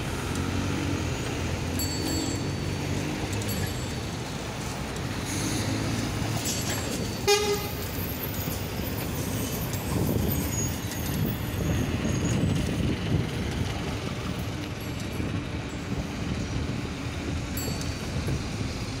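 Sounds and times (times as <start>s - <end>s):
city traffic noise: 0.0s - 19.0s
wind rumble on microphone: 8.5s - 19.0s.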